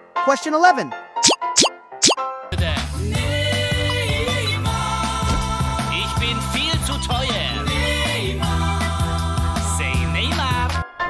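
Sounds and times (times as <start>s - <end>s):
rising cartoon pops: 1.2s - 2.2s.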